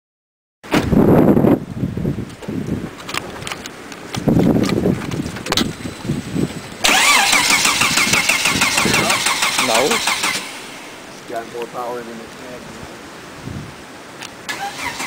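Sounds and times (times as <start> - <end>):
starter motor cranking engine: 6.8 - 10.9, 14.5 - 15.0.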